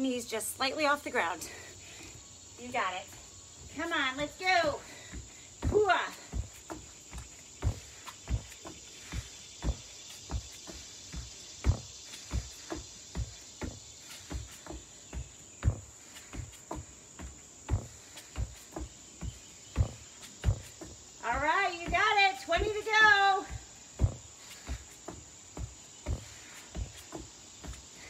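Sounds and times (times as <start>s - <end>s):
feet thumping on exercise mat: 1.5s - 28.0s.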